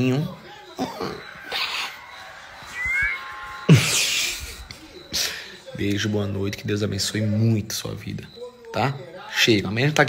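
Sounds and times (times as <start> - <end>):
high squeak of lips: 2.8 - 3.2.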